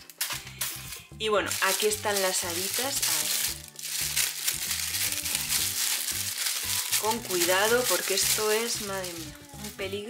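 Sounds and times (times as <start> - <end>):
music with low sustained notes: 0.0 - 10.0
plastic bag crinkling: 1.5 - 10.0.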